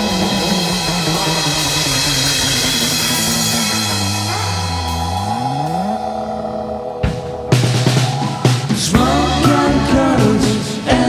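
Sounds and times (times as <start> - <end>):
low note sliding upward: 0.9 - 9.1
band chord ringing out: 3.2 - 9.5.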